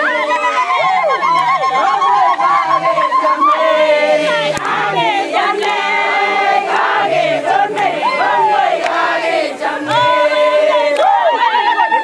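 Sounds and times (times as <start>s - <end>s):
women singing together: 0.0s - 12.0s.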